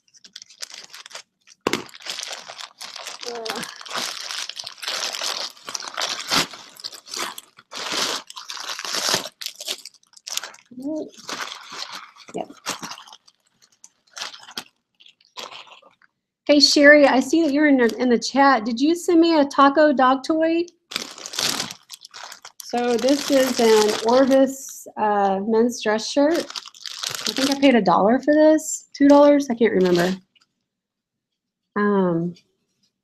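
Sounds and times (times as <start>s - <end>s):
plastic bag crinkling: 0.0s - 18.0s, 20.9s - 24.6s, 26.2s - 27.9s, 29.1s - 30.4s.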